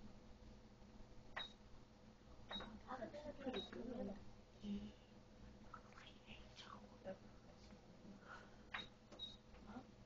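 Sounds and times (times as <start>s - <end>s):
soft voices: 2.8s - 5.1s.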